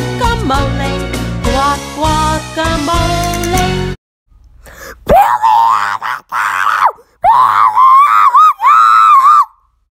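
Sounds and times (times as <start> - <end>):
person screaming: 4.8 - 9.6.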